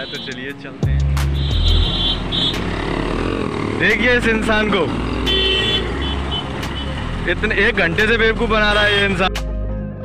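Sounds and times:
road traffic: 0.0s - 9.5s
motorcycle engine idling: 1.4s - 9.0s.

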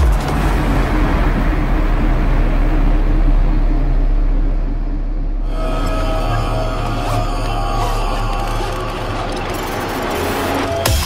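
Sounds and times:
noise wash: 0.0s - 10.9s.

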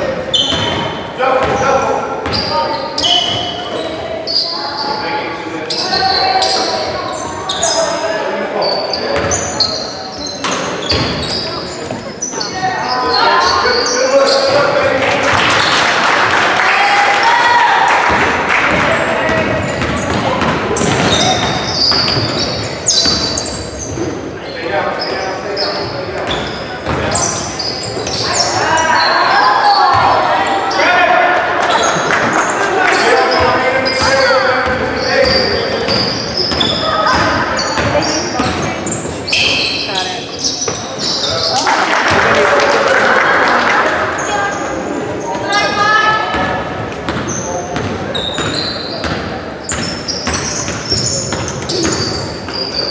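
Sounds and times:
sneakers squeaking: 0.0s - 16.0s, 16.8s - 42.4s, 44.0s - 52.9s.

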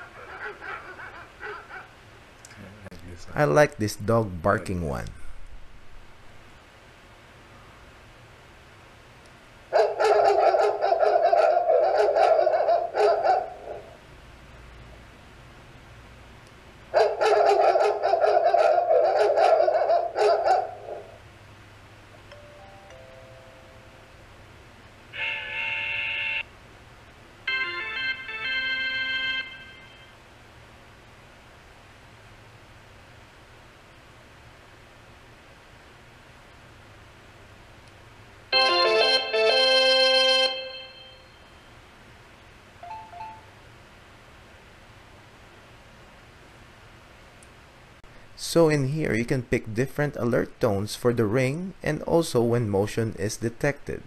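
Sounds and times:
doorbell chime tone: 22.3s - 24.0s, 27.5s - 30.1s, 38.6s - 41.4s, 42.8s - 43.5s.

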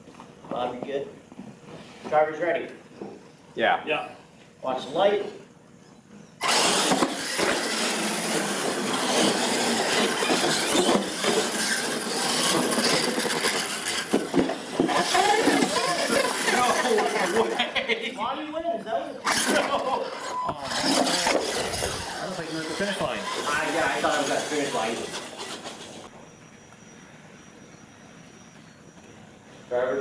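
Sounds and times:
electric drive motors running: 6.0s - 30.0s
toy trucks driving over floor: 6.4s - 17.7s, 19.2s - 26.2s
people's voices: 14.8s - 25.4s.

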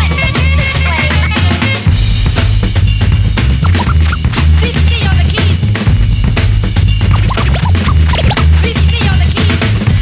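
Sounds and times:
hip-hop music with heavy bass: 3.2s - 5.8s, 6.4s - 10.0s
turntable scratching: 3.6s - 4.4s, 7.1s - 8.8s.

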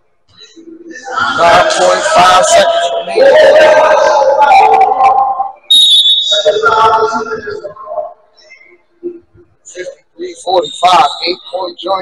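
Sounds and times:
man talking: 0.9s - 5.2s, 9.6s - 12.0s
referee's whistle blast: 5.6s - 6.8s.

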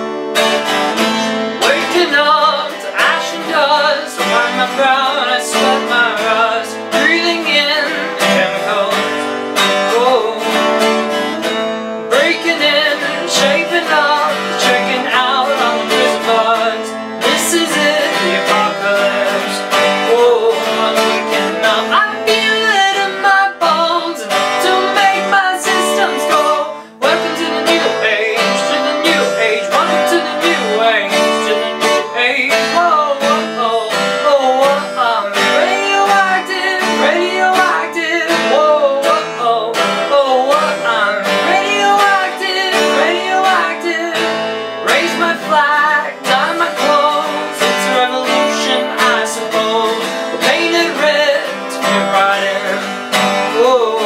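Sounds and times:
acoustic guitar strumming: 0.0s - 54.0s
man singing: 0.0s - 54.0s.

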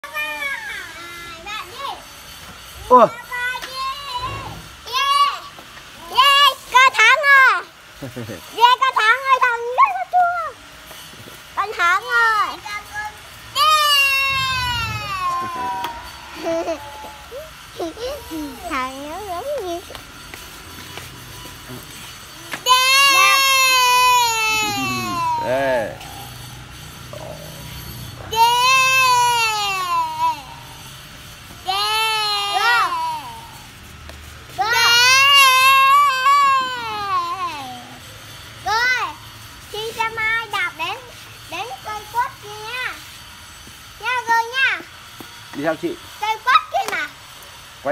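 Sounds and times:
young children calling out: 2.9s - 7.2s, 11.6s - 19.9s, 22.3s - 26.5s, 27.2s - 30.9s, 31.6s - 33.7s, 34.6s - 38.0s
toddler squealing: 3.7s - 6.4s, 13.5s - 19.9s, 22.3s - 33.7s, 34.6s - 38.1s
short rising and falling vocal sound: 13.8s - 17.6s.

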